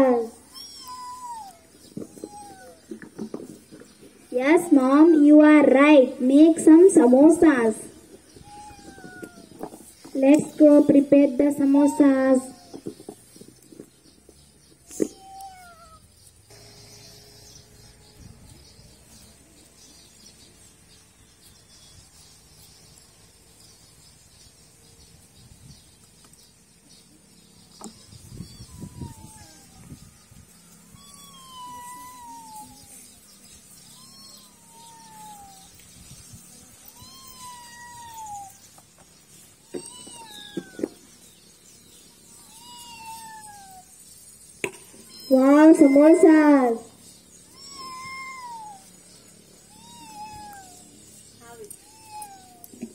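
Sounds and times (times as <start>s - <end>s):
animal calls in falling tones: 0.4s - 2.9s, 28.4s - 29.9s.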